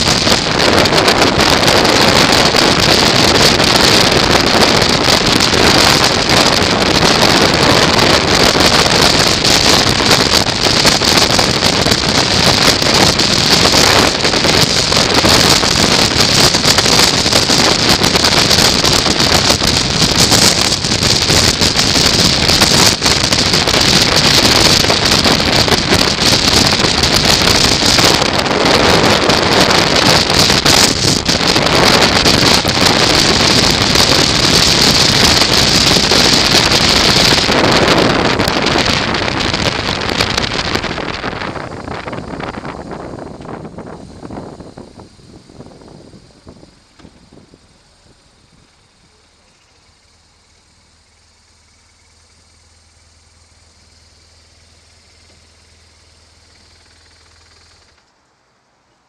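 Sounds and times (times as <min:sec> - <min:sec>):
wind noise on microphone: 0:00.0 - 0:58.0
motorcycle road noise: 0:00.0 - 0:59.0.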